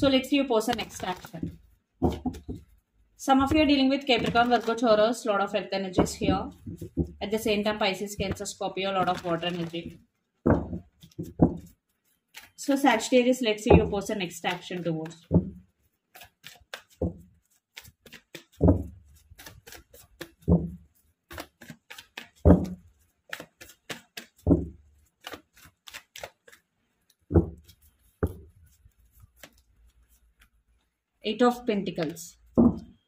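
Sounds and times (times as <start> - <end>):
cards being shuffled: 0.6 - 2.8, 3.5 - 5.1, 6.0 - 13.1, 13.7 - 30.9
cards knocked together: 16.2 - 26.6.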